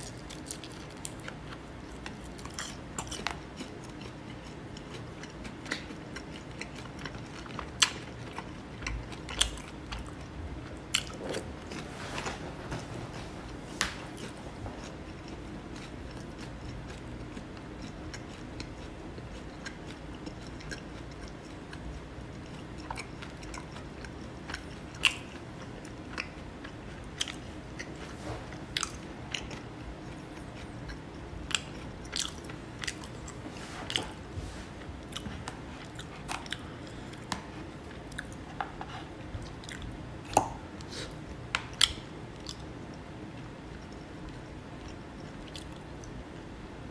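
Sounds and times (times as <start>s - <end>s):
person chewing: 0.0s - 12.4s, 13.4s - 46.2s.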